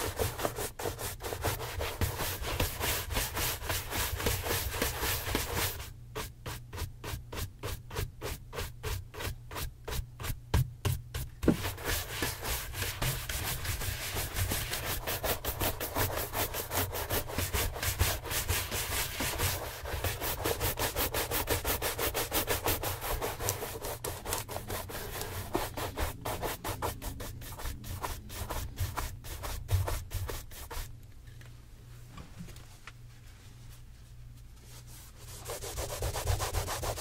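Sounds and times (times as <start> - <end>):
shoe brush brushing leather: 0.0 - 10.4, 11.2 - 30.9, 34.8 - 37.0.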